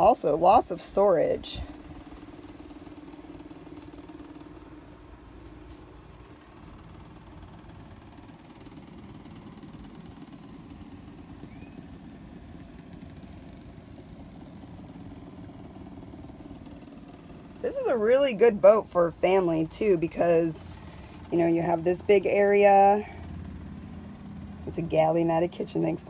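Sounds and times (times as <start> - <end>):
faint motor hum: 0.0 - 26.0.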